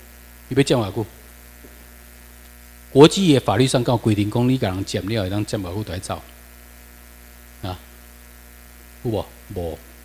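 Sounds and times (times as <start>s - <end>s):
mains hum: 0.0s - 10.0s.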